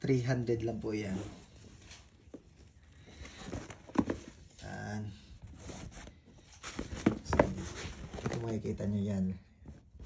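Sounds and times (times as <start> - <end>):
shoe clicks and rustles: 0.9 - 10.0.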